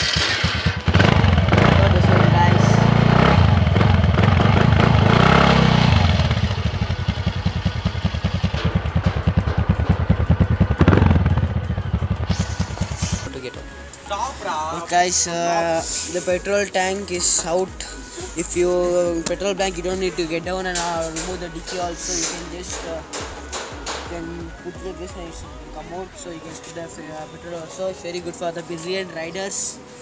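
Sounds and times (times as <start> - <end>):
scooter engine exhaust: 0.0 - 13.3.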